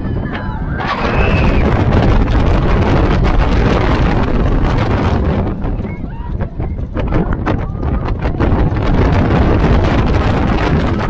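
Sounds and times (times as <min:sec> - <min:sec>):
roller coaster train clattering: 0:00.0 - 0:11.0
wind rushing over microphone: 0:00.0 - 0:11.0.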